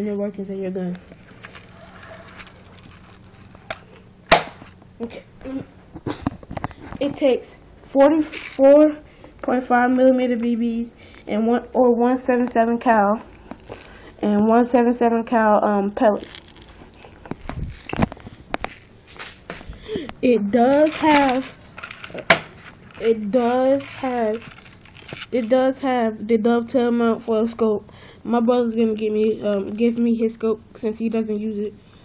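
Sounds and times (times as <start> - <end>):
sharp knock: 4.3 - 4.6.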